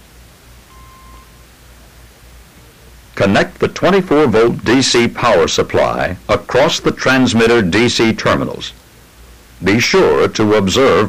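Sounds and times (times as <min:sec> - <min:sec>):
background hiss and hum: 0:00.0 - 0:11.0
short faint beep: 0:00.7 - 0:01.4.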